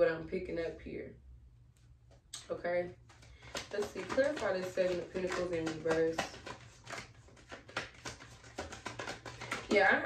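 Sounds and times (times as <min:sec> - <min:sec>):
cards being shuffled: 0:03.0 - 0:10.0.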